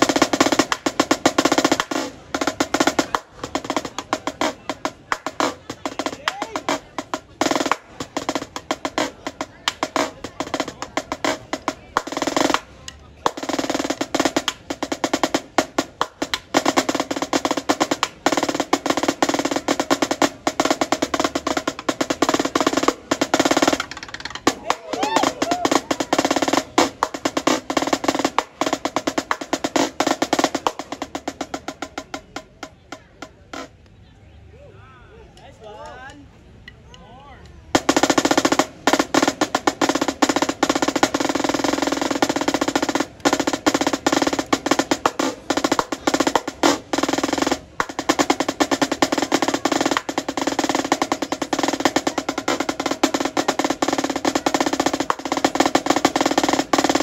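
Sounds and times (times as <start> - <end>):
marching snare drum rolls: 0.0 - 33.8, 37.7 - 57.0
voices: 0.0 - 57.0.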